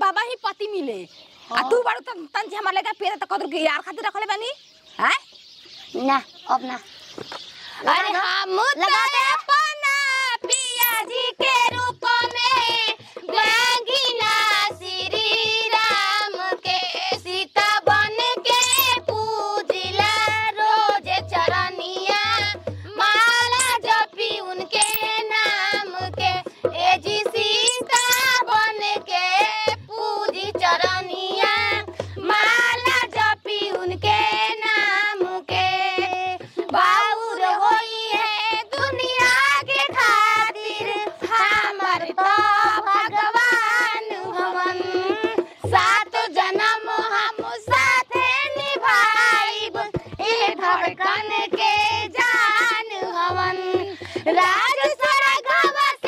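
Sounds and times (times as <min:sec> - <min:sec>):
woman singing in a high voice: 0:07.8 - 0:56.0
high-pitched voice singing: 0:10.4 - 0:11.1, 0:18.5 - 0:19.1, 0:24.7 - 0:25.1, 0:27.6 - 0:28.4.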